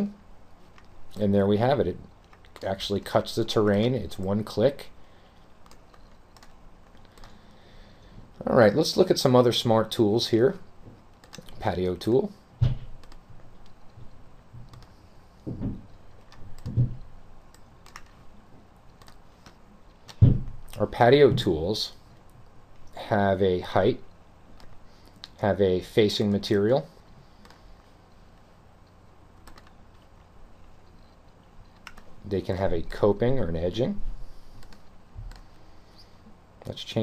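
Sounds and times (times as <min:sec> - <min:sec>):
faint room noise: 0:00.0 - 0:37.0
faint mouse clicks: 0:34.6 - 0:35.6.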